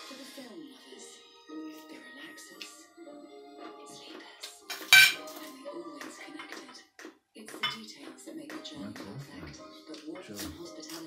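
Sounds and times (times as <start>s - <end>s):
metal spoons clinking on plates: 4.7s - 5.4s.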